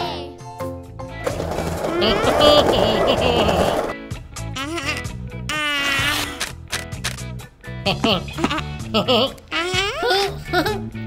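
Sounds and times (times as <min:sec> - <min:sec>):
cartoon background music: 0:00.0 - 0:11.0
squeaky cartoon character vocalizations: 0:04.6 - 0:06.4, 0:09.5 - 0:10.4.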